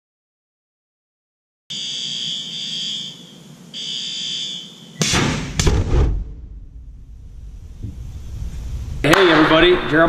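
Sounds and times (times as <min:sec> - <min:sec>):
warning alarm tones: 0:01.7 - 0:05.1
dust explosion blast: 0:05.0 - 0:09.5
low rumble: 0:05.6 - 0:10.0.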